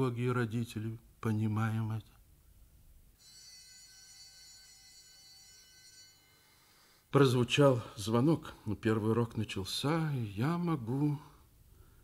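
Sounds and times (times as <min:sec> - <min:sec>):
school bell ringing: 0:03.2 - 0:07.0.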